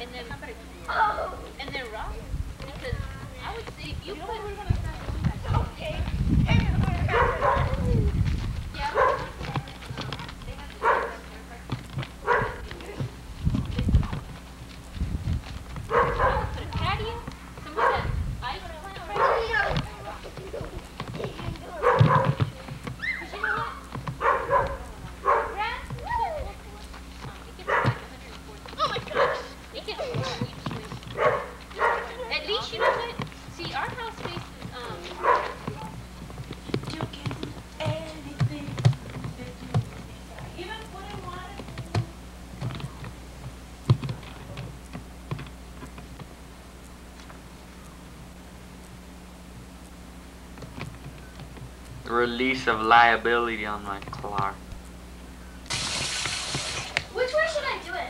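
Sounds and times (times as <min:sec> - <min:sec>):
children's voices: 0:00.9 - 0:02.0, 0:16.2 - 0:23.9, 0:24.5 - 0:31.1, 0:56.9 - 0:58.0
puppy yapping: 0:07.1 - 0:08.1, 0:08.8 - 0:09.7, 0:10.8 - 0:11.3, 0:12.2 - 0:12.8, 0:15.9 - 0:16.6, 0:17.7 - 0:18.2, 0:19.1 - 0:20.8, 0:21.7 - 0:26.5, 0:27.6 - 0:28.1, 0:28.8 - 0:30.5, 0:31.1 - 0:33.3, 0:34.9 - 0:36.0.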